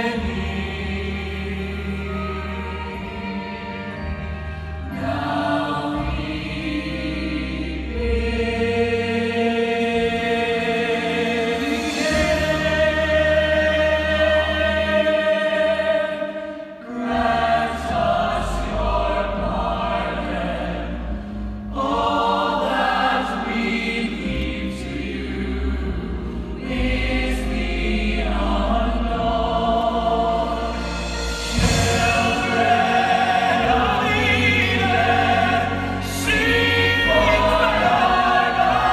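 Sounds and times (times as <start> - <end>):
choir singing held chords: 0.0 - 38.9
instrumental accompaniment: 0.0 - 38.9.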